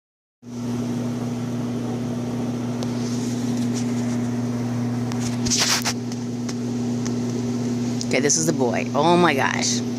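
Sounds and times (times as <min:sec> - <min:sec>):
low mechanical hum: 0:00.5 - 0:09.9.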